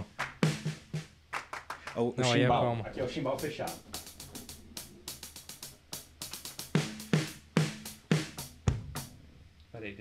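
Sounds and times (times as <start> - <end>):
closed hi-hat hits: 3.0 - 9.2.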